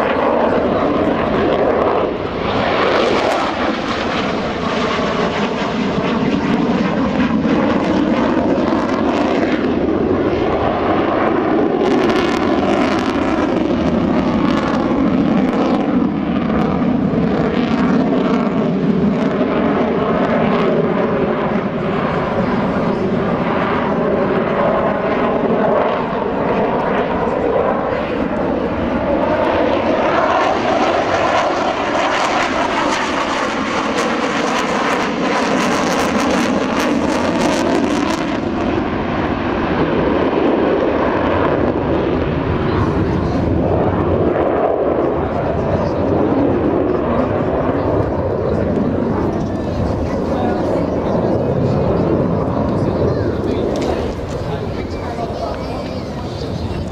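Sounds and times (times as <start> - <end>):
fighter jet engines roaring: 0.0 - 56.9.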